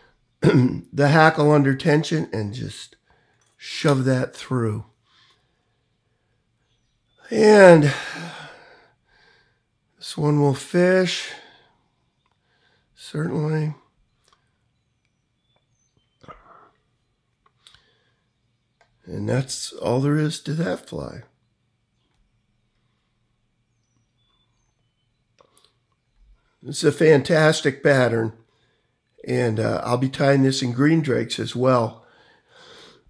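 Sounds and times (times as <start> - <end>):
man's voice trailing off: 7.3 - 8.6
person breathing: 7.8 - 9.7, 11.3 - 13.0, 17.6 - 18.3, 28.4 - 29.0, 32.0 - 33.0.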